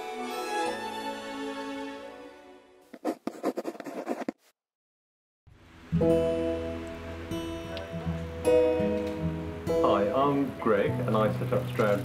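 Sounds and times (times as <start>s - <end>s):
pen scratching on paper: 2.9s - 4.4s
soft music notes: 5.8s - 12.0s.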